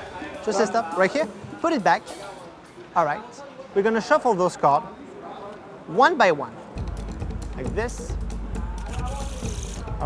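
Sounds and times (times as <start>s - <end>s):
faint crowd chatter: 0.0s - 10.0s
background music with bass line: 6.8s - 10.0s.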